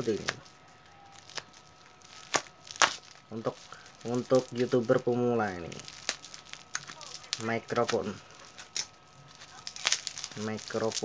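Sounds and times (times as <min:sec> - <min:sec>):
faint crackle: 0:00.0 - 0:11.0
scissors snipping bubble wrap: 0:00.0 - 0:11.0.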